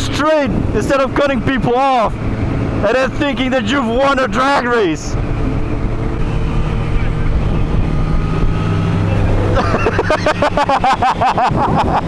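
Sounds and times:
passing motorcycle engine: 0:00.0 - 0:11.6
motorcycle engines cruising: 0:00.0 - 0:12.0
wind noise on microphone: 0:00.4 - 0:02.8, 0:05.1 - 0:09.5, 0:11.2 - 0:12.0.

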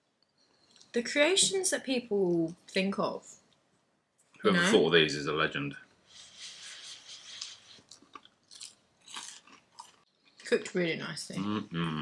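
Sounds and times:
people chewing: 0:06.2 - 0:12.0
crunches of biting food: 0:07.4 - 0:10.0.

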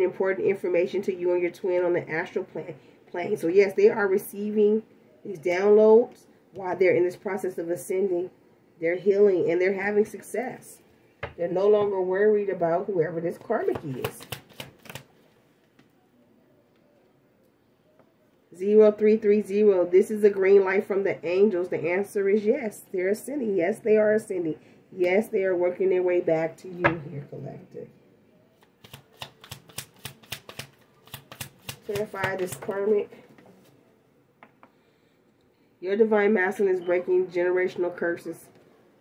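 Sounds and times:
cards shuffling and flicking: 0:13.6 - 0:15.2, 0:28.6 - 0:33.8.

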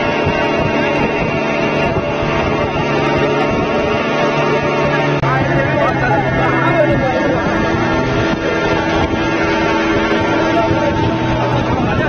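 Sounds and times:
motorboat engines running: 0:00.0 - 0:12.0
voices: 0:00.8 - 0:12.0.

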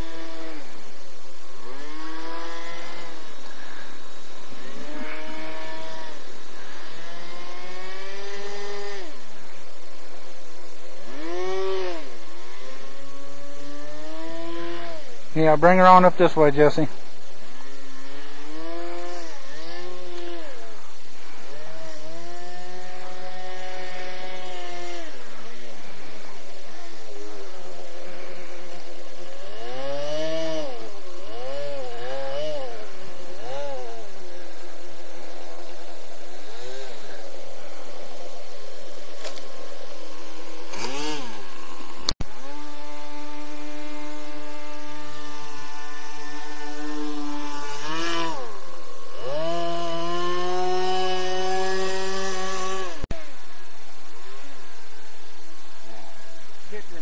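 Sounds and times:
model airboat motor and propeller: 0:00.0 - 0:57.0.

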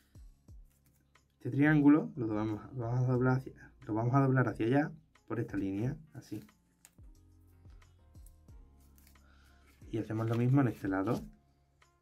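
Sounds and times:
faint background music: 0:00.0 - 0:12.0
paper being folded and creased: 0:08.8 - 0:11.3.

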